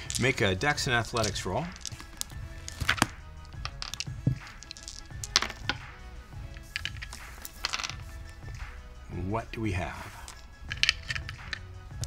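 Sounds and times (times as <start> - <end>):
dice clattering on tabletop: 0.0 - 8.6, 10.2 - 11.7
quiet background music: 0.0 - 12.0.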